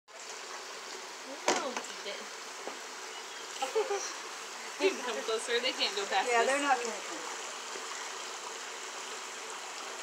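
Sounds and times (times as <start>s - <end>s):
running water rushing: 0.1s - 10.0s.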